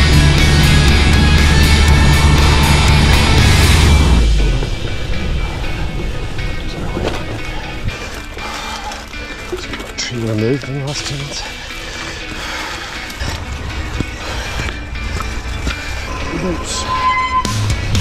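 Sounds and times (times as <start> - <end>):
loud backing music: 0.0 - 18.0
bike rolling on muddy track: 4.6 - 16.0.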